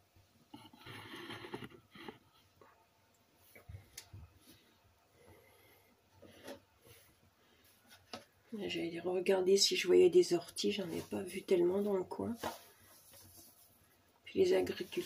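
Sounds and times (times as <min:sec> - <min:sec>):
person speaking: 0:08.5 - 0:12.6, 0:14.3 - 0:15.0.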